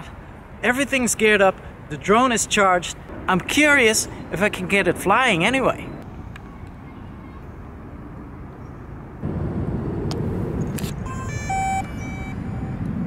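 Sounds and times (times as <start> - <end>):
electronic beeps: 11.1 - 12.9.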